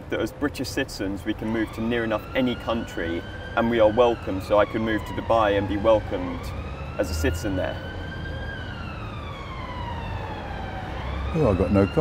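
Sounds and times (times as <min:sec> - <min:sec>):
emergency siren wailing: 0:00.7 - 0:12.0.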